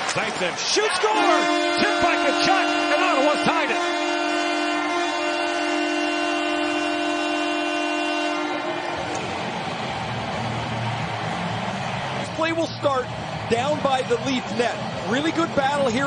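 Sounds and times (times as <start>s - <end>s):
arena goal horn blast: 1.0s - 9.4s.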